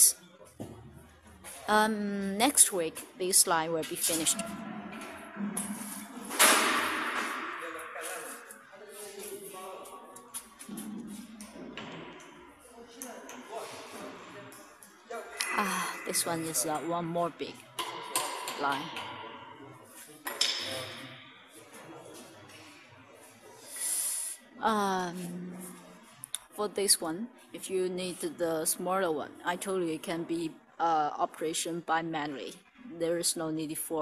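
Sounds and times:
faint workshop room noise: 3.9 - 16.8, 17.5 - 26.4.

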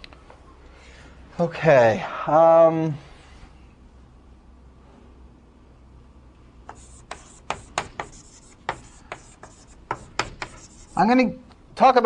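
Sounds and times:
scratchy writing on a board: 6.7 - 11.2.

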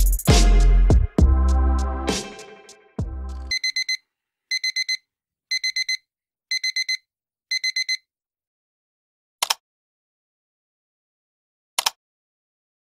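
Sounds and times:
music track: 0.0 - 3.5
electronic alarm beeping: 3.4 - 8.0.

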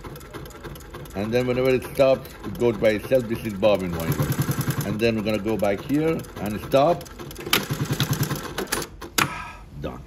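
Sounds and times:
sewing machine stitching: 0.0 - 9.2.

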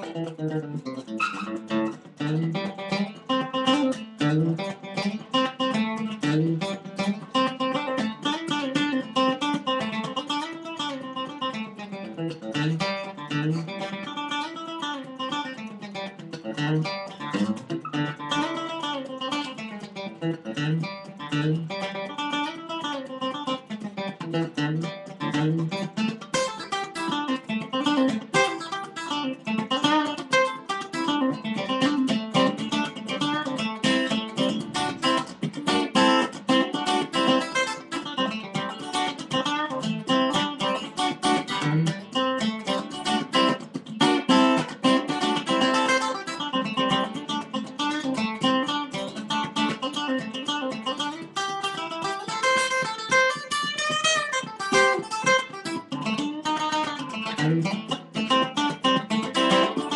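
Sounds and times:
acoustic guitar playing: 0.0 - 59.9.

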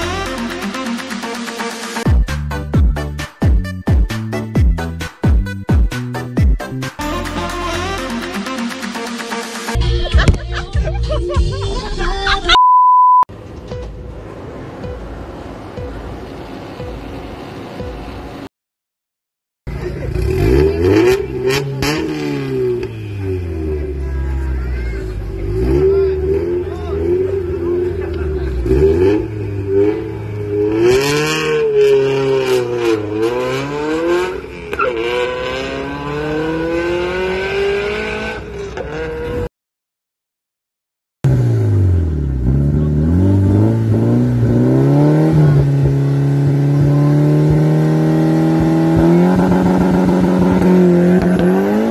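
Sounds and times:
background music: 0.0 - 12.6
high electronic beep: 12.5 - 13.3
car engine revving and accelerating: 19.7 - 39.5, 41.3 - 51.9.

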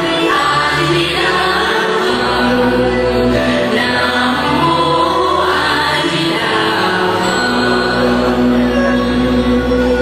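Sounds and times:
choir singing long held notes: 0.0 - 10.0.

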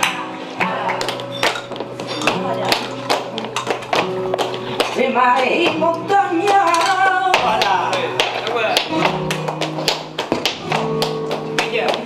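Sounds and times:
flamenco guitar: 0.0 - 12.0
rhythmic tapping: 0.0 - 12.0
hand claps: 6.4 - 12.0.

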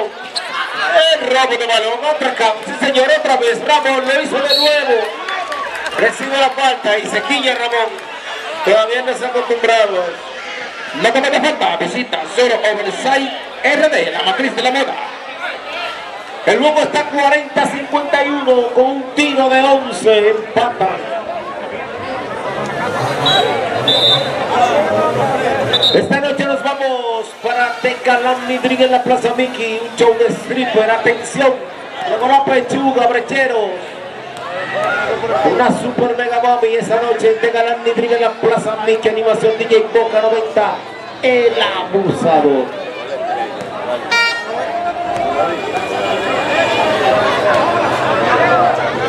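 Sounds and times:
spectators chattering: 0.0 - 49.0
background voices: 21.8 - 31.7
short horn toot: 23.0 - 24.8, 25.6 - 26.2, 44.1 - 44.6.

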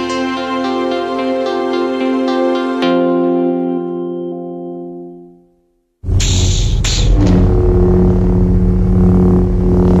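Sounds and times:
deep rumble: 6.0 - 10.0
low held tone: 6.1 - 10.0.

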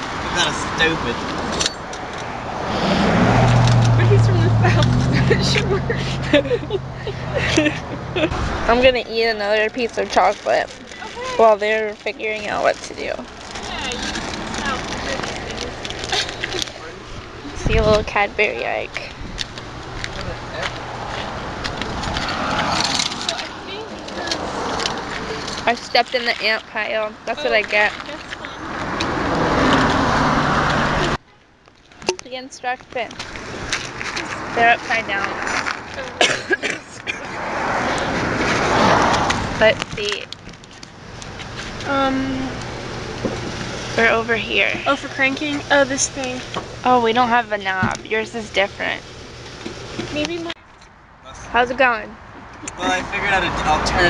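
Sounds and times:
vehicle engine hum: 0.0 - 54.0.

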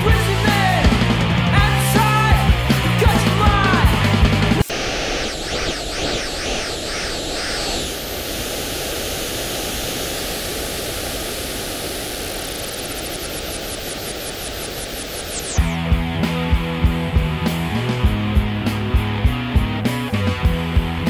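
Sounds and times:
television static hiss: 4.6 - 15.6
fast high flutter: 4.6 - 15.8
wavering whistle: 4.7 - 10.0.

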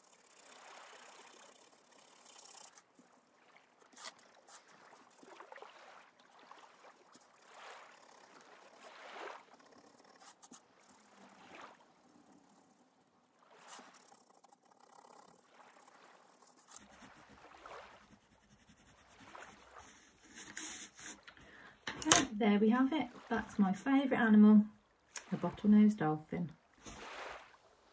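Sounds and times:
pencil scratching on paper: 0.0 - 2.8, 4.0 - 5.2, 9.6 - 10.6, 13.7 - 15.5, 16.3 - 21.3.

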